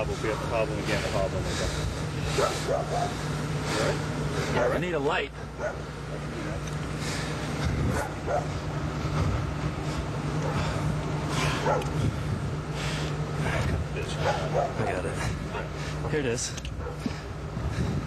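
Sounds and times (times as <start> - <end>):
steady low hum: 0.0 - 18.0
dog barking: 2.4 - 3.2, 3.8 - 4.8, 5.6 - 6.2, 7.9 - 8.6, 11.6 - 11.9, 14.2 - 14.9, 16.8 - 17.1.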